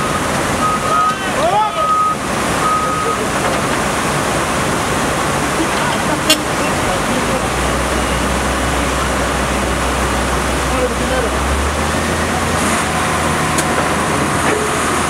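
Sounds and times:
dump truck diesel engine rumble: 0.0s - 15.0s
rushing floodwater: 0.0s - 15.0s.

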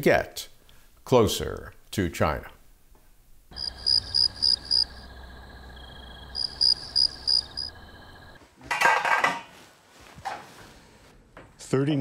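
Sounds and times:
insect trill: 3.5s - 8.4s
insects chirping: 3.5s - 8.4s.

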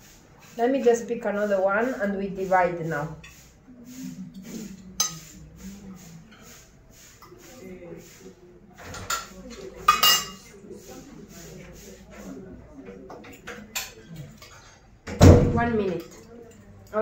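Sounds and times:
fork clinking against metal pot: 5.0s - 5.3s, 9.9s - 10.4s.

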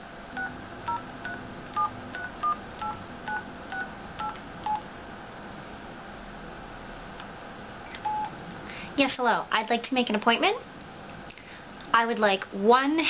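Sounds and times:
phone keypad dialing beeps: 0.4s - 4.8s, 8.0s - 8.3s.

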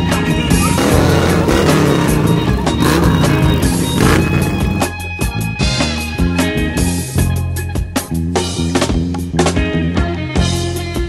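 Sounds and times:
motorcycle engine passing slowly: 0.8s - 4.9s.

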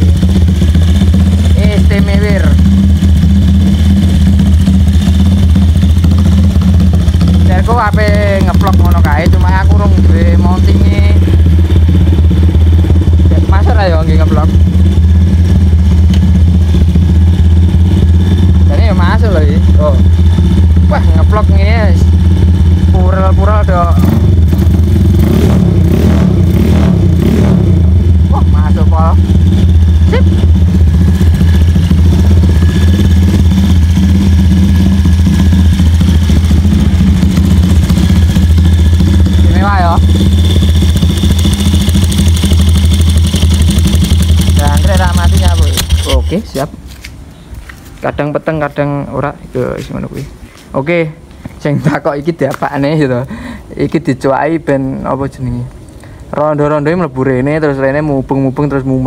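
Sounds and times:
motorcycle engine idling: 0.0s - 47.8s, 51.9s - 55.3s.

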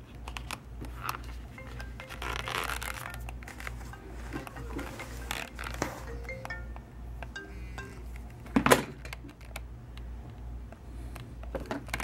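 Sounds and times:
leather being handled: 2.2s - 3.7s.

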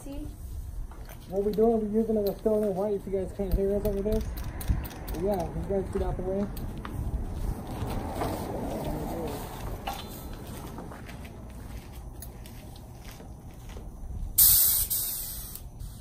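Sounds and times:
paint spray gun hissing: 14.4s - 16.0s.

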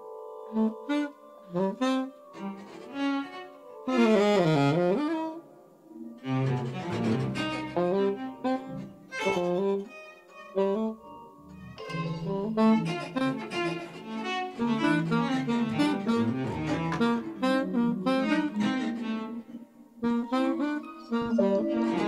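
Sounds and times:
electronic wind instrument: 0.0s - 22.0s
keyboard: 0.0s - 22.0s
saxophone: 0.0s - 22.0s.

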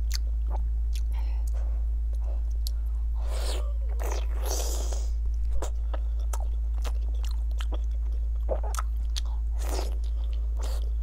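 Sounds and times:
steady low hum: 0.0s - 11.0s
biting and chewing meat: 5.3s - 11.0s.

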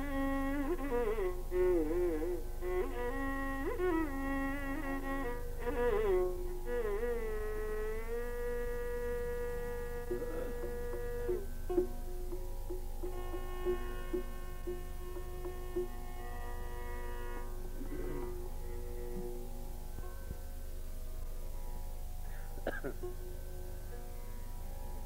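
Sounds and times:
classical melody with bending notes: 0.0s - 22.0s
low mains hum: 0.0s - 25.0s.

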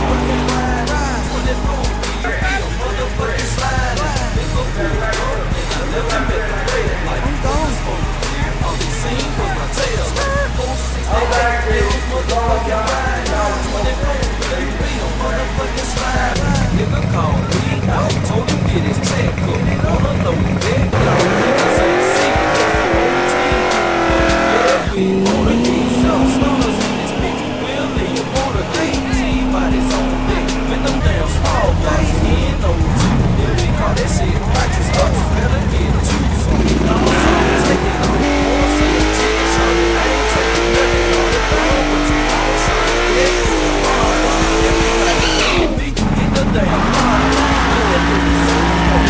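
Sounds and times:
car engines revving: 0.0s - 49.0s
hip hop beat: 0.0s - 49.0s
tyres squealing: 15.8s - 49.0s.

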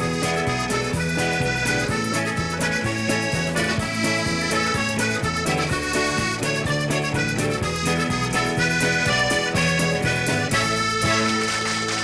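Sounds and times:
band playing steady beat: 0.0s - 12.0s
button accordion playing: 0.0s - 12.0s.

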